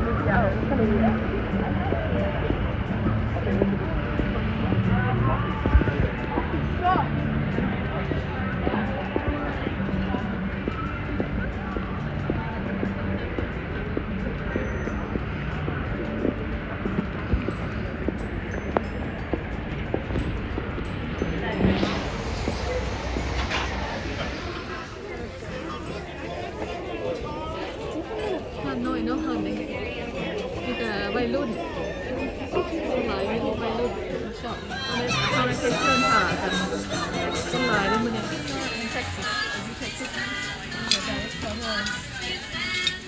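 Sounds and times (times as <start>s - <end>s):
indistinct background voices: 0.0s - 43.0s
music playing: 0.0s - 43.0s
people talking: 0.0s - 43.0s
traffic noise: 0.0s - 43.0s
footstep clicks: 7.5s - 24.6s
wind on microphone: 15.0s - 26.6s.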